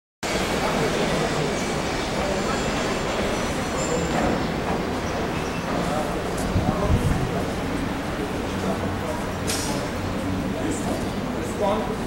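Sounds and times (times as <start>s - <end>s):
train carriages moving: 0.3s - 12.0s.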